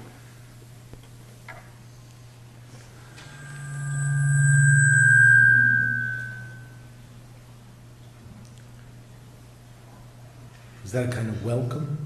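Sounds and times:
low hum: 2.4 - 7.8
microphone feedback ring: 3.0 - 6.9.

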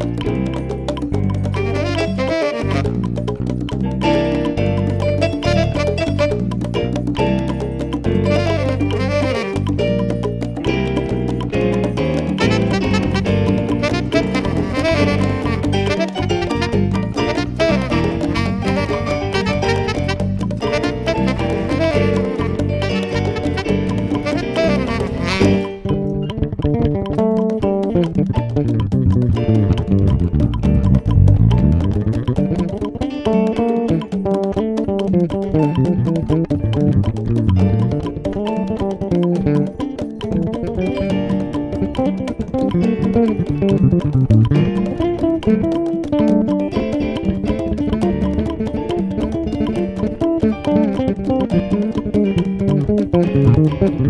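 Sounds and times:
electric bass guitar solo: 0.0 - 54.0
saxophone phrase: 1.7 - 3.0, 8.3 - 9.8, 12.4 - 25.8.

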